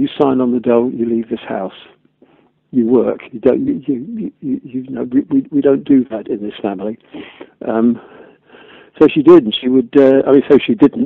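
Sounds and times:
breathing: 2.2 - 2.6, 7.0 - 9.0
man speaking over telephone: 2.7 - 7.0, 7.6 - 8.1, 9.0 - 11.0.

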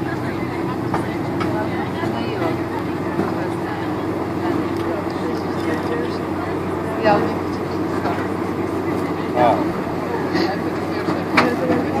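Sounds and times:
airplane cabin noise: 0.0 - 12.0
passengers' voices: 0.0 - 12.0.

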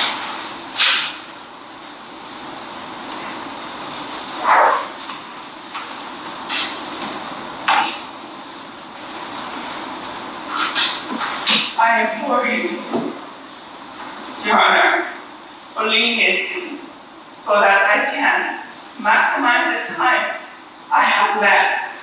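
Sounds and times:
room noise hiss: 0.0 - 22.0.

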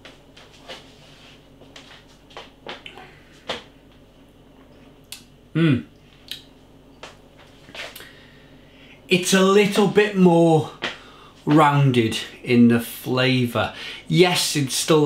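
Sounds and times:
man humming from throat: 5.5 - 5.9
wet lip smacks and tongue clicks: 6.2 - 6.5.

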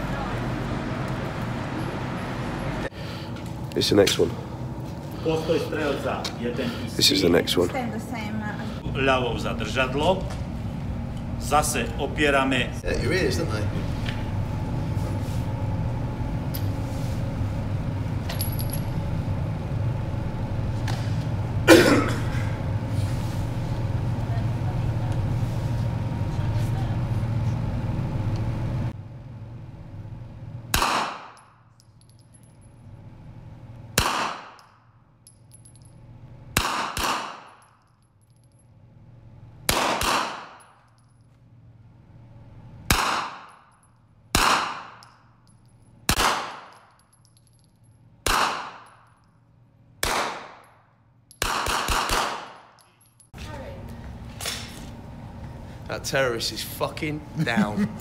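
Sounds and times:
rifle gunshots indoors: 30.7 - 31.4, 34.0 - 34.7, 36.6 - 37.6, 39.7 - 40.7, 42.9 - 43.5, 44.3 - 45.0, 46.1 - 46.8, 48.2 - 48.9, 50.0 - 50.7, 51.4 - 52.7.

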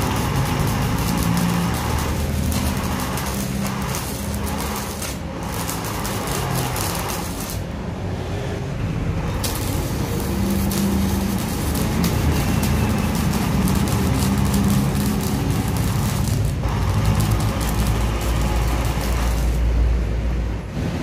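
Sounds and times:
welding arc crackling and sizzling: 0.0 - 8.1, 9.1 - 21.0.

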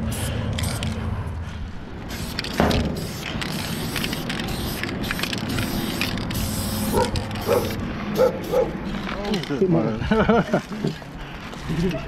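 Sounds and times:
spray paint can hissing: 0.0 - 1.0, 2.0 - 8.8.

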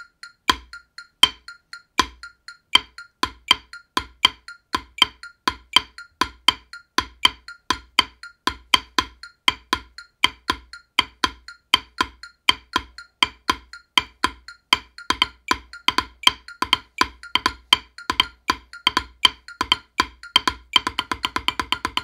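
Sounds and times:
drumsticks on practice pad: 0.0 - 22.0.

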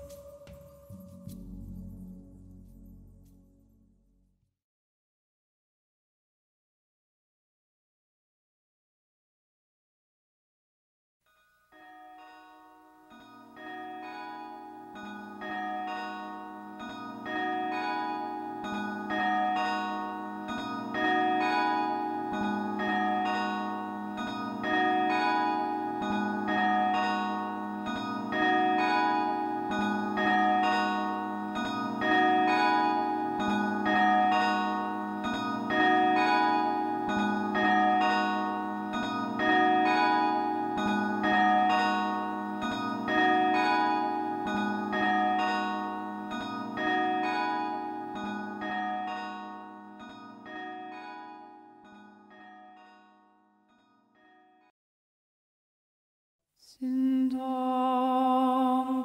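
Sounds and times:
bell-like chimes ringing: 0.0 - 3.1, 11.3 - 54.5.

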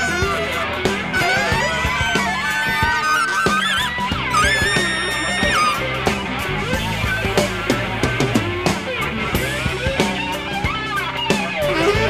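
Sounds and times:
high lead instrument line: 0.0 - 6.2
drums: 0.0 - 12.0
electric bass: 0.0 - 12.0.

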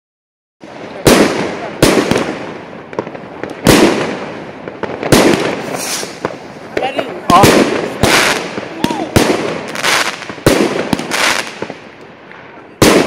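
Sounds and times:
fireworks bangs: 0.6 - 13.0
fireworks pops and crackle: 0.6 - 13.0.

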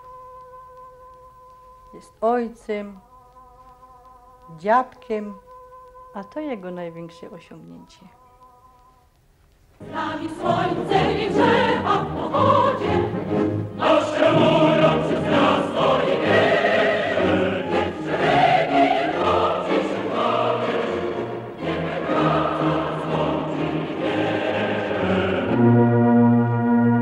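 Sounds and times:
choir singing: 9.8 - 27.0.

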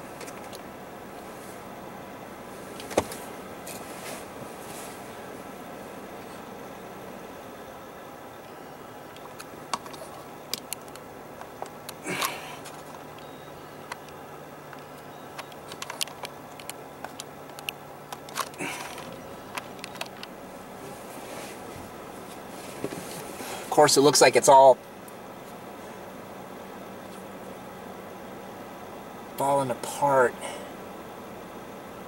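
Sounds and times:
low engine hum: 0.0 - 32.0
road noise inside car: 0.0 - 32.0
sharp clicks: 9.1 - 20.3
rustling: 15.4 - 23.7.

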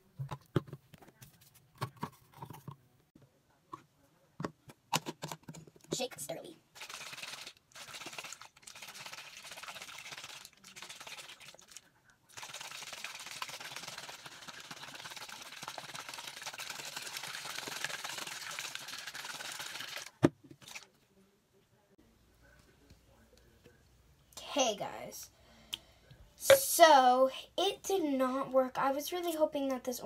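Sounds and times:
plastic bottle of water rattling: 6.8 - 20.9.

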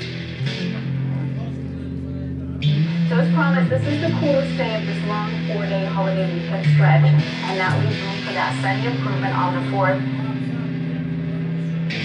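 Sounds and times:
electric guitar chords: 0.0 - 12.0.

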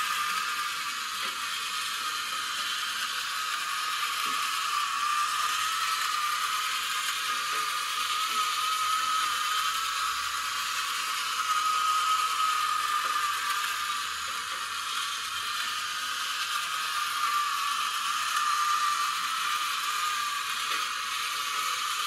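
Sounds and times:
small motor and gears whirring: 0.0 - 22.0.

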